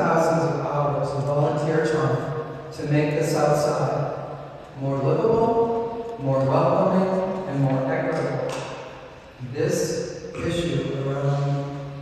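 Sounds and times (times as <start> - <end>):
man talking into microphone: 0.0 - 12.0.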